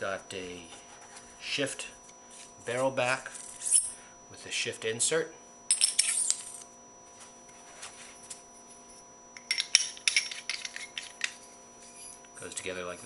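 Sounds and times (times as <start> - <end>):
metal parts clinking and scraping: 9.4 - 12.2.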